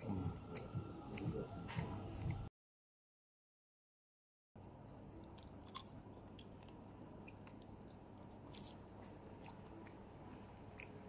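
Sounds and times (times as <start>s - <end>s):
low room noise: 4.6s - 11.0s
chewing crispy food: 5.0s - 11.0s.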